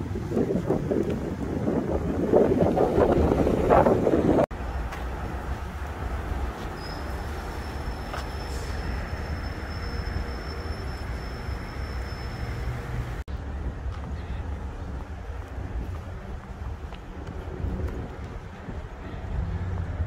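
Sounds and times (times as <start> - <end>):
wind buffeting microphone: 0.0 - 6.6, 12.7 - 20.0
low traffic rumble: 0.0 - 20.0.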